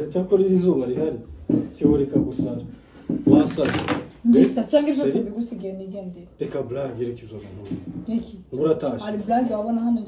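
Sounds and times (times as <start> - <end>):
man and woman arguing: 0.0 - 10.0.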